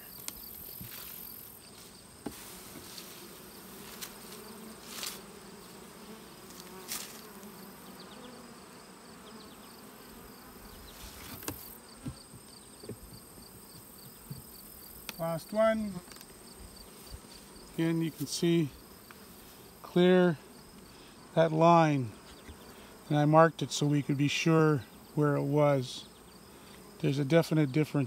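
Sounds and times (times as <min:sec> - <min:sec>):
honeybees buzzing: 0:00.0 - 0:28.0
knocks of wooden hive parts: 0:11.2 - 0:15.2.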